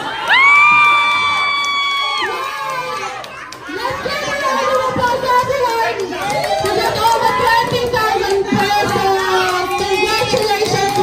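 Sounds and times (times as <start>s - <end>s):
excited chatter of voices: 0.0s - 11.0s.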